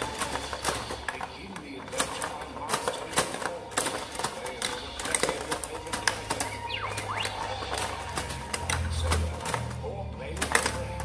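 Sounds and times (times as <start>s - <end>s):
faint music: 0.0s - 11.0s
pinball clicking and knocking: 0.0s - 11.0s
whistling electronic effect: 6.4s - 8.0s.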